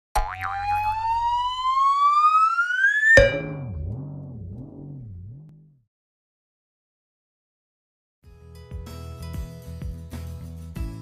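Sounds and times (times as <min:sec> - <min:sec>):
rising whistle-like tone: 0:00.7 - 0:04.0
low wobbling tone: 0:03.0 - 0:05.8
sharp hit: 0:03.2 - 0:05.0.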